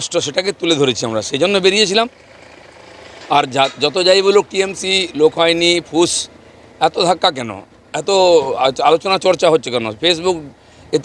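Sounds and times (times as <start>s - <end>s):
man speaking: 0.0s - 2.1s, 3.3s - 11.0s
faint car approaching: 0.0s - 11.0s.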